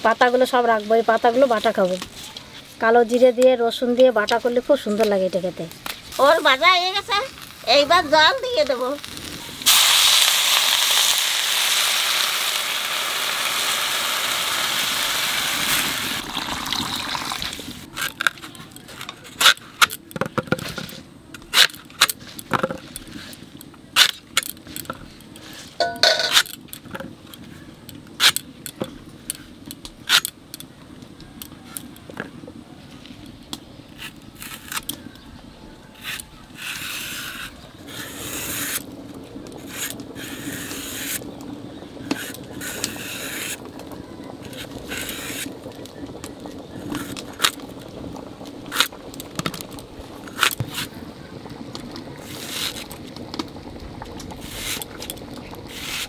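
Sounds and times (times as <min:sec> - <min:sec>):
food sizzling in a wok: 0:06.0 - 0:17.9.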